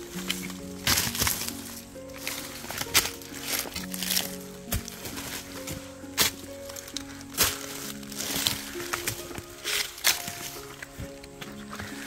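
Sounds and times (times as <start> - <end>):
background music of held notes: 0.0 - 12.0
rustling brush and leaf litter: 0.0 - 12.0.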